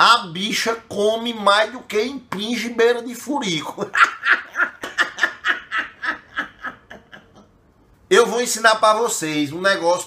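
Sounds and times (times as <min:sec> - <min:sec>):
man laughing hard: 0:03.7 - 0:07.6.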